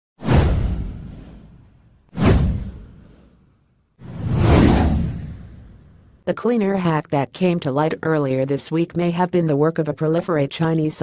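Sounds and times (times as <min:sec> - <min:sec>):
whoosh with deep rumble: 0:00.2 - 0:06.2.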